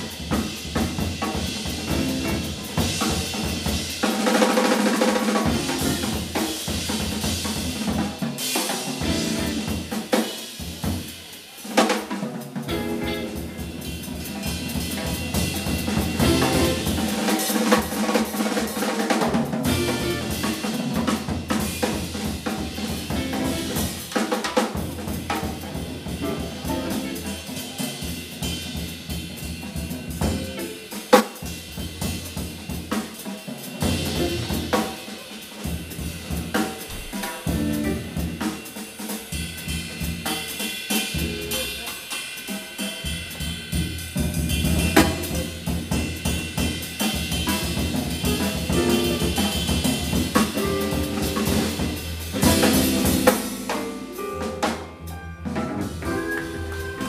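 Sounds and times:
drum kit hits: 0:00.0 - 0:11.2, 0:12.0 - 0:33.2, 0:33.8 - 0:38.7, 0:40.4 - 0:43.5, 0:44.2 - 0:57.0
jazz combo playing: 0:01.6 - 0:04.0, 0:05.4 - 0:07.2, 0:08.8 - 0:10.2, 0:12.6 - 0:18.6, 0:19.6 - 0:29.0, 0:33.8 - 0:35.3, 0:37.3 - 0:38.5, 0:41.0 - 0:42.5, 0:44.7 - 0:46.3, 0:47.4 - 0:57.0.

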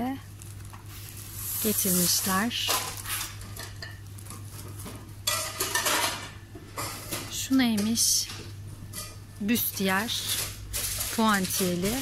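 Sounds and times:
plastic wrapping crinkling: 0:00.3 - 0:05.0, 0:10.0 - 0:12.0.

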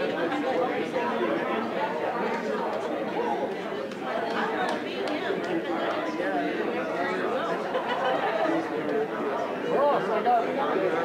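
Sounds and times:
crowd chatting: 0:00.0 - 0:11.0.

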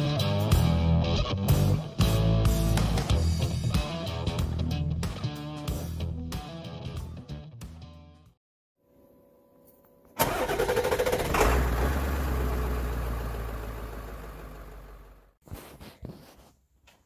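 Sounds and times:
car engine cranking and starting: 0:10.2 - 0:15.3.

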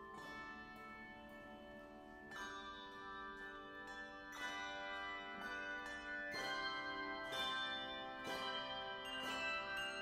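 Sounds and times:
handbell choir ringing chords: 0:00.0 - 0:10.0.

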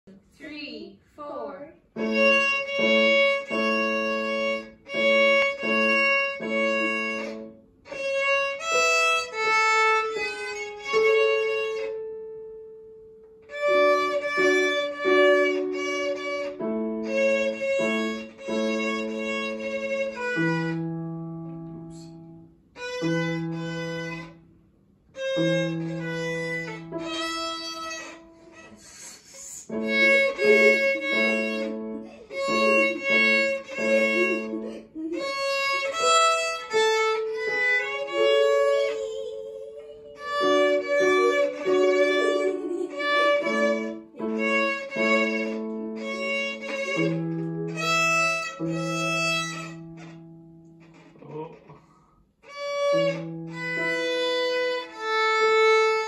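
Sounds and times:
violin long bowed notes: 0:01.9 - 0:51.8, 0:52.4 - 0:56.0.

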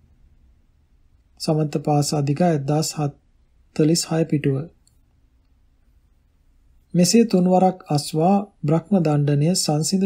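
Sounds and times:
person reading aloud: 0:01.4 - 0:04.8, 0:06.9 - 0:10.0.

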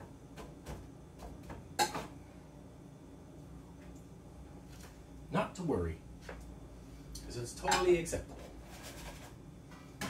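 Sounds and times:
kitchen things clicking and tapping: 0:00.0 - 0:02.2.

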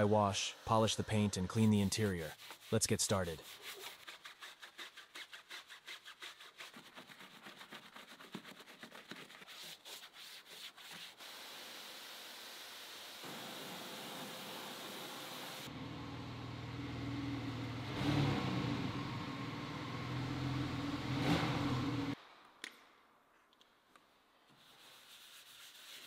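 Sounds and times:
brush scrubbing foam: 0:00.0 - 0:14.2, 0:24.6 - 0:26.0
car engine running: 0:15.7 - 0:22.2.

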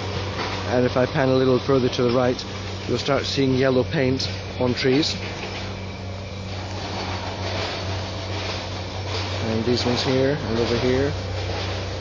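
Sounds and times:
heavy machinery engine hum: 0:00.0 - 0:12.0.

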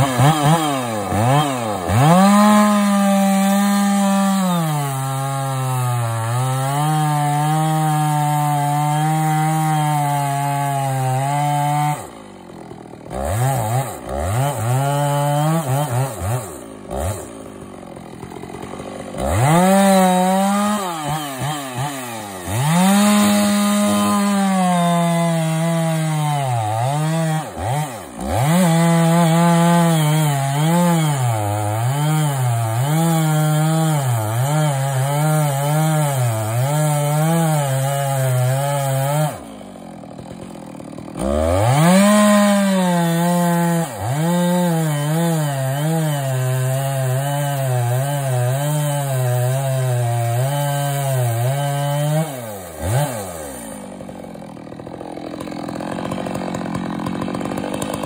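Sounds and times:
chainsaw cutting tree trunk: 0:00.0 - 0:58.0.

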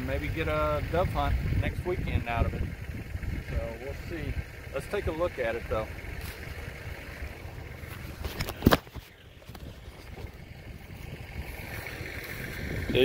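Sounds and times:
wind buffeting microphone: 0:00.0 - 0:04.7, 0:06.0 - 0:13.0
dry grass rustling underfoot: 0:06.1 - 0:12.9.

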